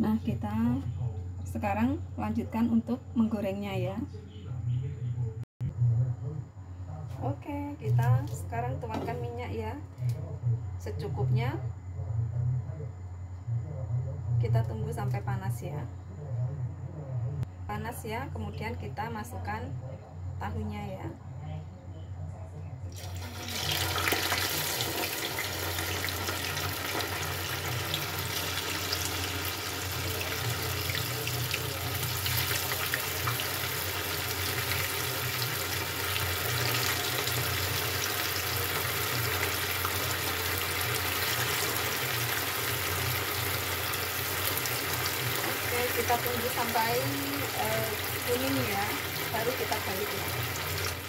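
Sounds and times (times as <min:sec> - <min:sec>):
tofu sizzling in hot oil: 0:23.0 - 0:51.0.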